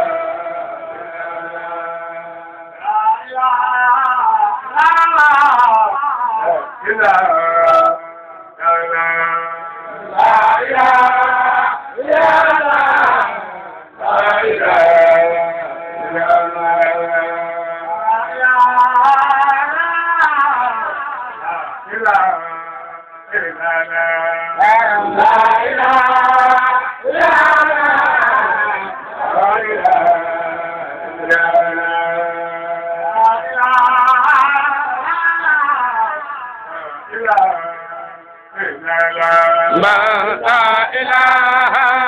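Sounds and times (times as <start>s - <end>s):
men chanting: 0.0s - 42.0s.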